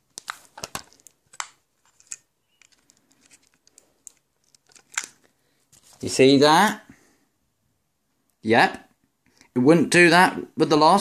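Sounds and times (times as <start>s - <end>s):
fingers handling plastic camera: 0.1s - 6.0s.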